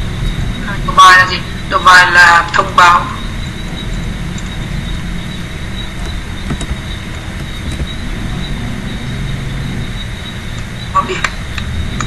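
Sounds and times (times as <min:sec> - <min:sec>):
low rumbling noise: 0:00.0 - 0:12.0
thin high whine: 0:00.0 - 0:12.0
keyboard clicks: 0:06.0 - 0:08.1.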